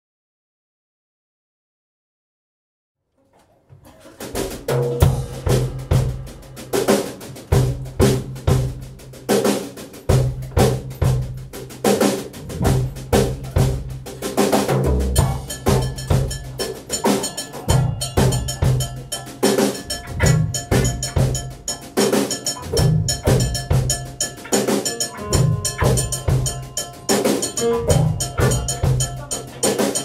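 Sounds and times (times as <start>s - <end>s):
snare and bass drum hits: 4.3s - 18.9s
live band playing: 4.4s - 30.0s.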